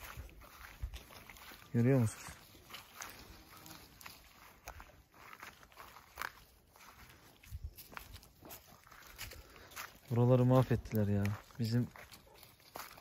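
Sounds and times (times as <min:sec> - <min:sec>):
footsteps on grass and earth: 0:00.0 - 0:13.0.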